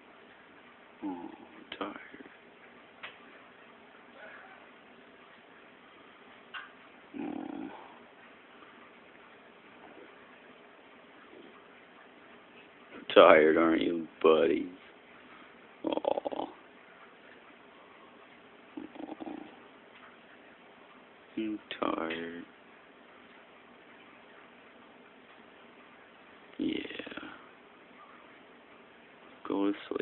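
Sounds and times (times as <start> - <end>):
dog low vocal sound: 1.0 - 1.7, 7.1 - 8.0, 18.8 - 19.6.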